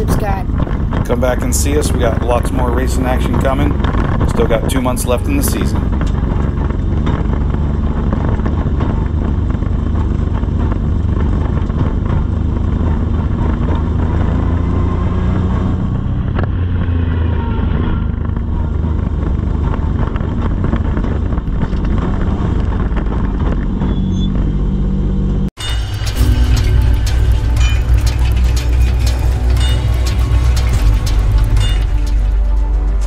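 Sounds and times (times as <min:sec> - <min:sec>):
car engine low rumble: 0:00.0 - 0:33.0.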